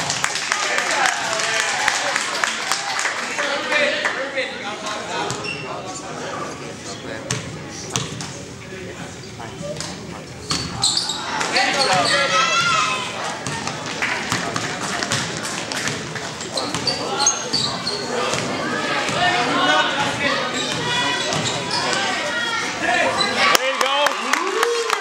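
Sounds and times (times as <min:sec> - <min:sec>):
sneaker squeaks: 0:05.3 - 0:05.8, 0:09.5 - 0:13.8, 0:15.9 - 0:18.5, 0:20.3 - 0:22.2, 0:23.1 - 0:23.5.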